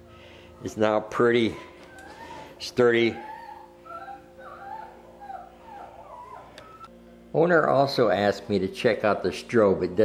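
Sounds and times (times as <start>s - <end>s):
dog whimpering: 1.2s - 6.9s.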